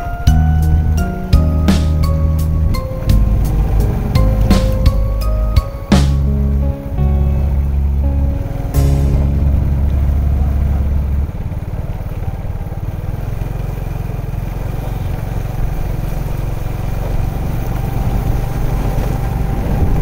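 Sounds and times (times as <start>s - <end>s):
held low tone: 0.0s - 12.4s
road noise on wet road: 0.0s - 20.0s
vehicle engine and tyre rumble: 0.0s - 20.0s.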